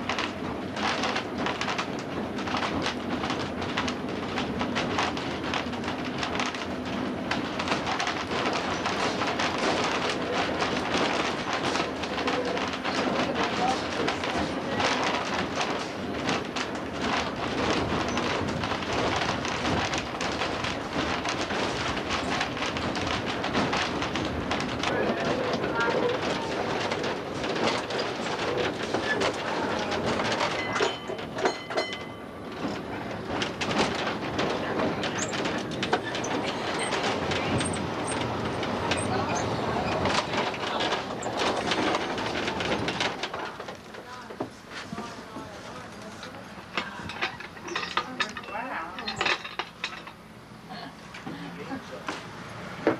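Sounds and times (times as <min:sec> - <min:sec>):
trolley wheels rumbling on rail: 0:00.0 - 0:50.8.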